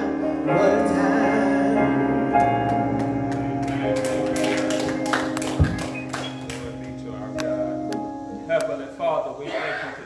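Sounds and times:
piano chords: 0.0 - 9.5.

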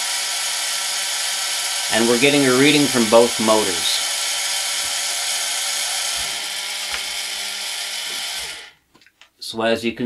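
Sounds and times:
small motors gear whine: 0.1 - 8.7.

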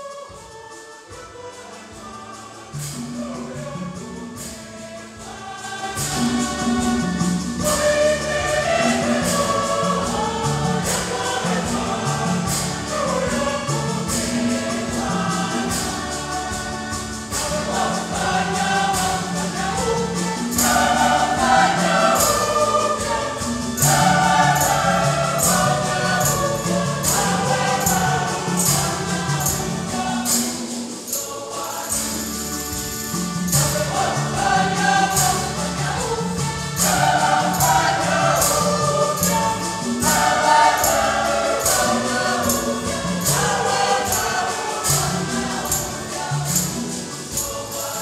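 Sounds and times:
choir singing a hymn: 0.0 - 48.0
hand drums: 0.0 - 48.0
jingling percussion: 0.0 - 48.0.

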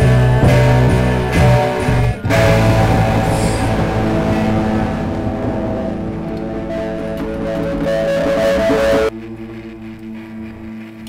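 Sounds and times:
guitar chord ringing: 0.0 - 9.1.

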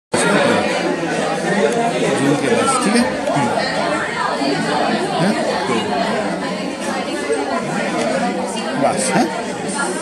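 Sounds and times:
students chattering: 0.1 - 10.0.

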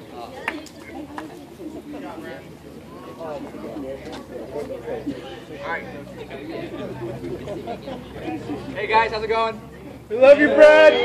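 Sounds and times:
people talking in low voices: 0.0 - 11.0.

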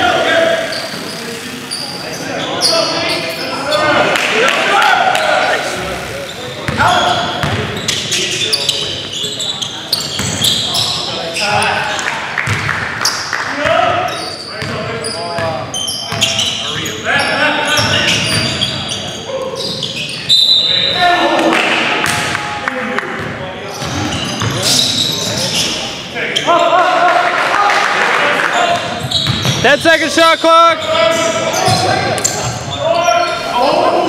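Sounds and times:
sneakers squeaking on court: 0.5 - 4.1, 6.2 - 13.3, 14.0 - 21.0, 23.2 - 26.6, 28.6 - 29.8, 30.4 - 33.8
players shouting: 2.4 - 7.5, 25.6 - 34.0
basketball bouncing: 6.7 - 7.7, 10.1 - 10.4, 12.4 - 12.8, 22.0 - 22.4, 28.8 - 29.6.

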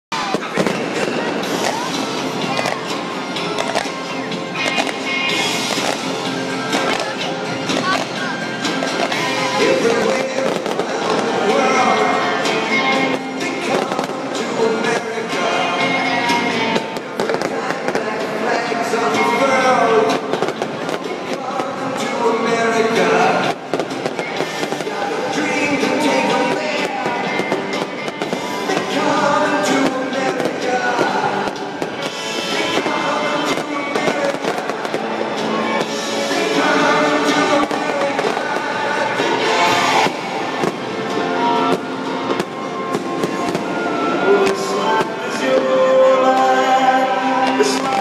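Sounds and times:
fireworks bangs and crackles: 0.1 - 15.5, 16.3 - 48.0
loud music with singing: 0.1 - 48.0.

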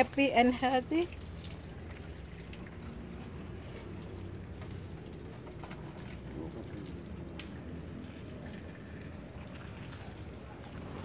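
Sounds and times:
water dripping: 0.0 - 11.0.

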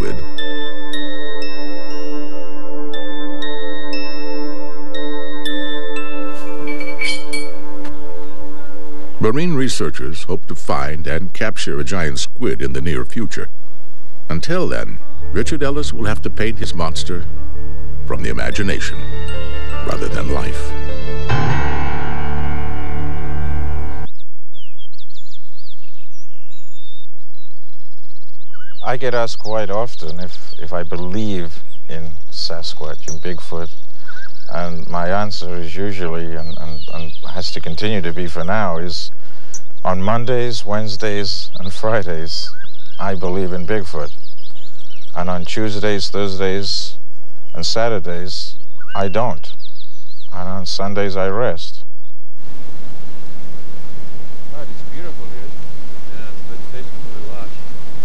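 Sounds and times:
wild birds chirping: 0.0 - 10.1, 14.2 - 52.4, 53.9 - 58.0
faint background noise: 6.2 - 20.8, 28.1 - 58.0.

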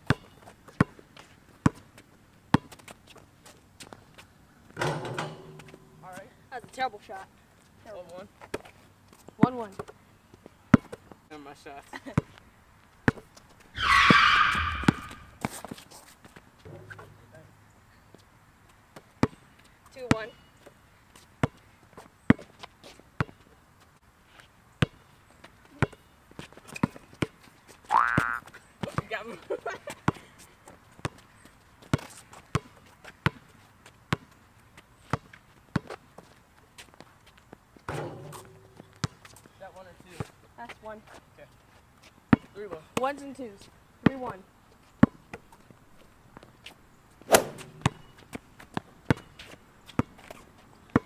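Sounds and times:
basketball bouncing on asphalt: 0.0 - 2.9, 10.7 - 11.2, 13.0 - 13.4, 14.0 - 15.6, 19.0 - 19.4, 21.4 - 21.6, 22.3 - 22.6, 23.2 - 23.4, 24.8 - 25.0, 31.8 - 33.5, 34.1 - 34.4, 35.1 - 36.3, 37.0 - 39.5, 42.3 - 43.4, 44.0 - 44.4, 45.0 - 45.6, 47.3 - 51.0
high squeal: 13.8 - 15.4.

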